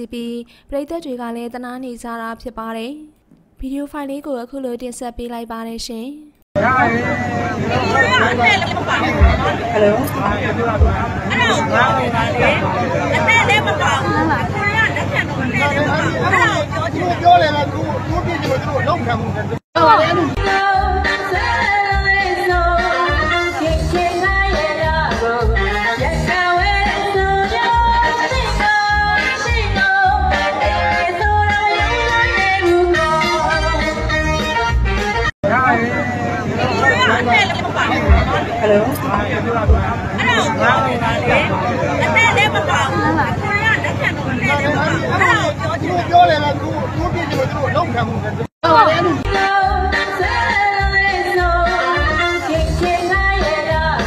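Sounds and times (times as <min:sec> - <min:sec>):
backing music with low beat: 0:08.8 - 0:11.9, 0:19.8 - 0:35.3, 0:38.1 - 0:41.4
woman singing into microphone: 0:19.8 - 0:33.8, 0:48.6 - 0:54.0.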